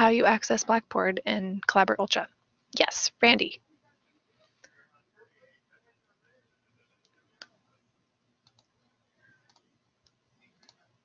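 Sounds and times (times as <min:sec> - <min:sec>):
faint sharp clicks: 0:07.0 - 0:07.5, 0:08.4 - 0:08.7, 0:09.5 - 0:10.8.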